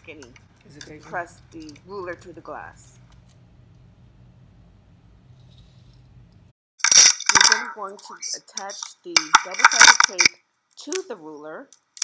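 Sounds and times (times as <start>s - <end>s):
faint low room hum: 0.0s - 6.5s
clatter of objects on glass: 6.8s - 7.8s, 8.7s - 10.4s.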